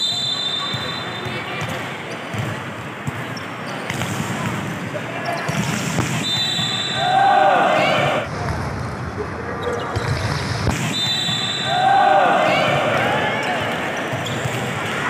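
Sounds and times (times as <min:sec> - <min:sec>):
spectator chatter: 0:00.0 - 0:10.6, 0:11.3 - 0:15.0
volleyball being struck: 0:05.5 - 0:06.8
voices shouting: 0:06.3 - 0:08.3, 0:11.1 - 0:15.0.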